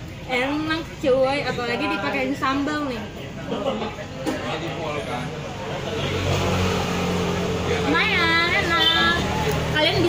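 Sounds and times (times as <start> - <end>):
vehicle engine humming: 4.7 - 10.0.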